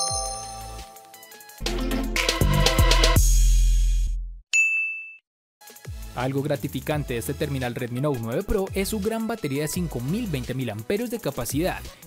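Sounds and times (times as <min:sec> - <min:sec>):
bright ding sound effect: 0:00.0 - 0:01.4
background music: 0:00.0 - 0:03.2, 0:05.7 - 0:12.0.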